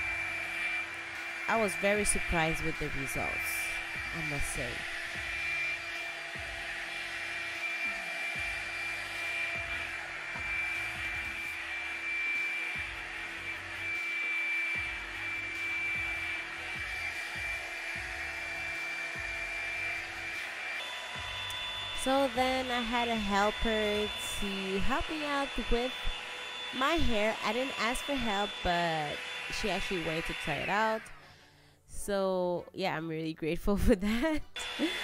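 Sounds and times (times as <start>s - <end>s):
hair dryer brush air rush: 0.0s - 31.2s, 34.6s - 35.0s
motor whine: 0.0s - 31.2s, 34.6s - 35.0s.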